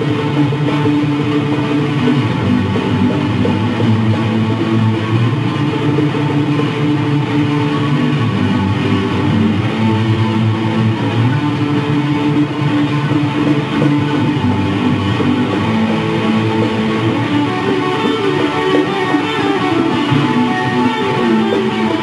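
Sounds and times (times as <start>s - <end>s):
instrumental jam led by guitar: 0.0s - 22.0s.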